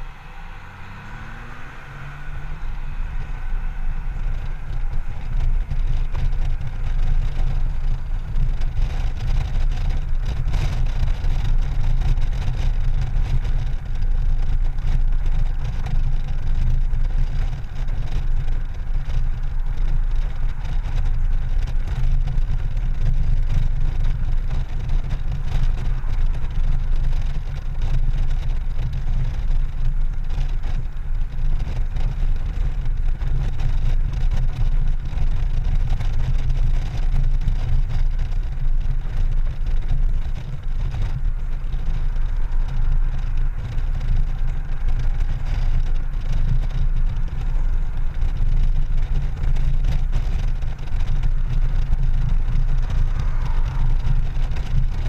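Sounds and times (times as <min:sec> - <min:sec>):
motorcycle cruising: 0:00.0 - 0:55.0.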